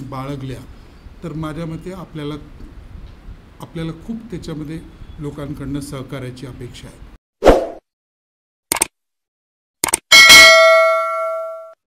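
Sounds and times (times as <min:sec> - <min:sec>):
bright bell ding: 0:10.1 - 0:11.8.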